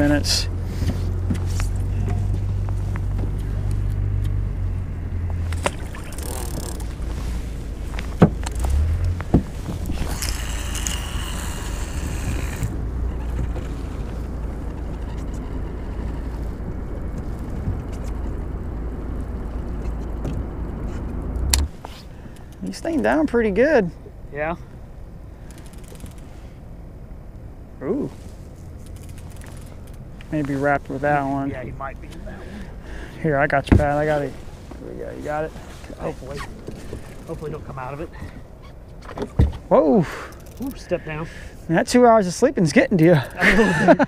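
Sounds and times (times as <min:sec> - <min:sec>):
boat motor humming: 0:00.0 - 0:27.8, 0:28.5 - 0:40.8.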